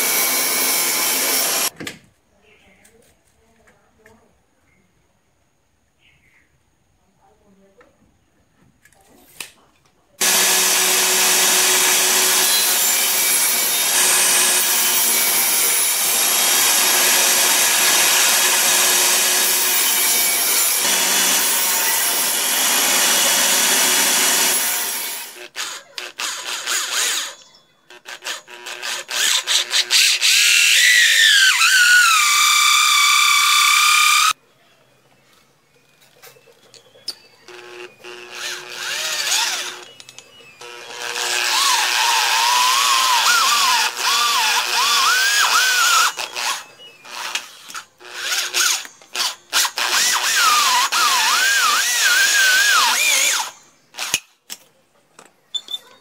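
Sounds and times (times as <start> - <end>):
electric drill running hole saw: 0.0 - 1.7, 10.2 - 34.4, 37.5 - 54.2
table saw cutting: 0.0 - 1.7, 10.2 - 34.4, 37.5 - 40.0, 40.6 - 54.2.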